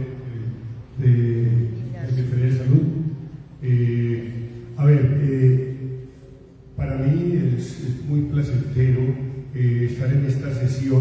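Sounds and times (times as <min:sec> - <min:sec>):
man speaking into microphone: 0:00.0 - 0:11.0.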